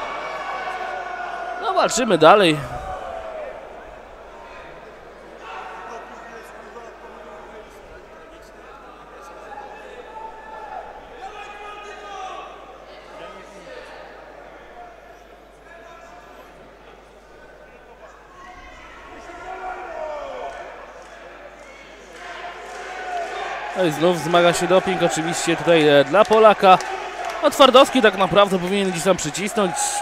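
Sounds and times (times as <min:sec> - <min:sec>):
crowd shouting and cheering: 0:00.0 - 0:06.2, 0:18.3 - 0:30.0.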